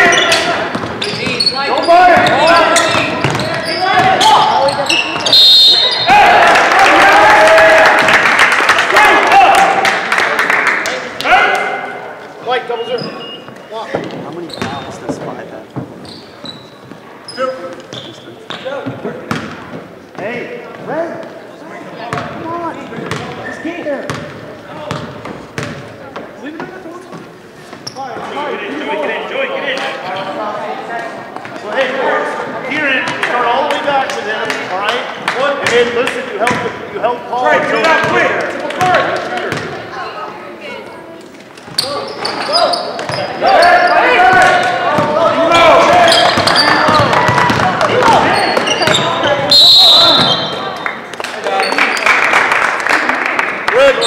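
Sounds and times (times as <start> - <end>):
chatter of voices echoing: 0.0 - 54.0
basketball bouncing on wooden floor: 2.1 - 4.2, 23.0 - 23.4, 39.5 - 39.8.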